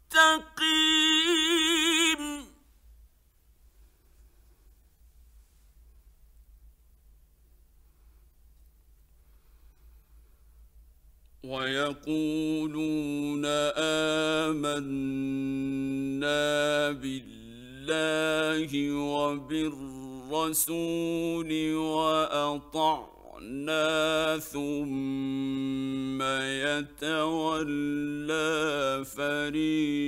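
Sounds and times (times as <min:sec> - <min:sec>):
man reciting melodically: 0:00.0 - 0:02.6, 0:11.4 - 0:30.0.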